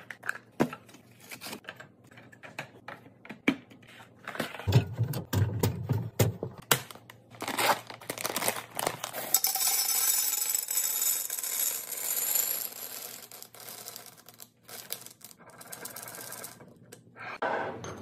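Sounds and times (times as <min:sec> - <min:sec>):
plastic bag crinkling: 0:07.3 - 0:09.3.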